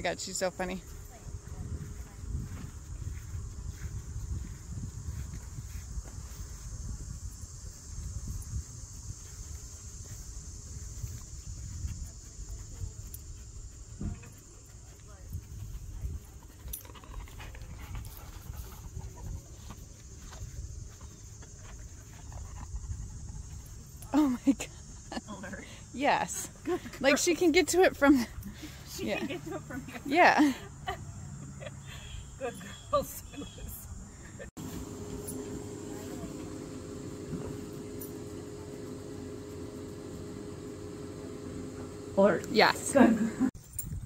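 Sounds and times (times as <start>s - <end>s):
insects droning: 0.0s - 43.9s.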